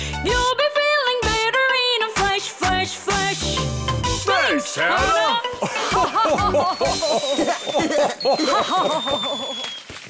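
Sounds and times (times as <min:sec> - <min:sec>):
children's song music: 0:00.0 - 0:07.5
falling high whistle tones: 0:06.8 - 0:10.0.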